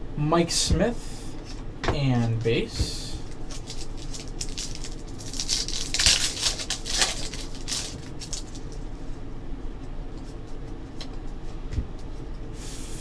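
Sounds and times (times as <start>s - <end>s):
cards clicking and rustling: 3.5s - 8.8s.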